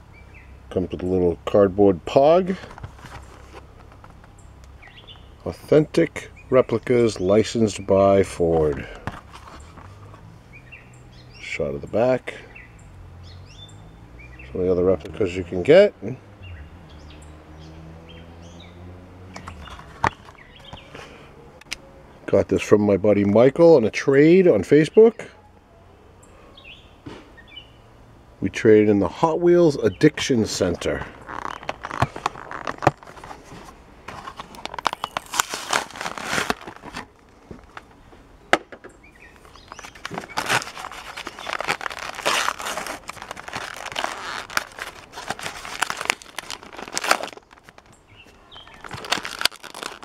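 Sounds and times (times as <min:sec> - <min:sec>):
cardboard tearing and crinkling: 0:31.0 - 0:37.9, 0:39.4 - 0:47.9, 0:48.8 - 0:50.0.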